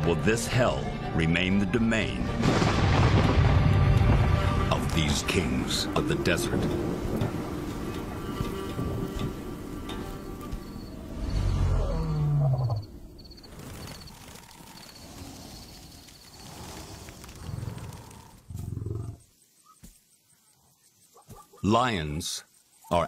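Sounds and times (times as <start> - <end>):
background music: 0.0 - 12.4
lion roaring: 11.1 - 12.9.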